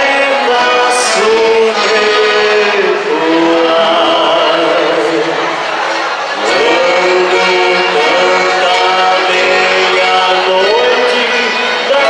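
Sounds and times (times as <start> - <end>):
person singing long held notes: 0.0 - 5.7, 6.4 - 12.0
folk band accompaniment: 0.0 - 12.0.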